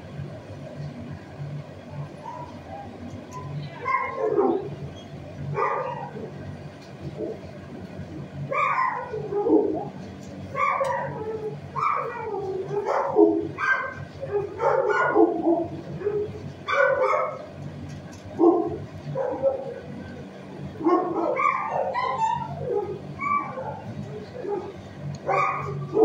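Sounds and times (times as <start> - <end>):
steady low hum: 0.0 - 26.0
dog barking: 3.8 - 4.7, 5.5 - 6.3, 8.5 - 9.9, 10.5 - 17.5, 18.4 - 19.9, 20.8 - 26.0.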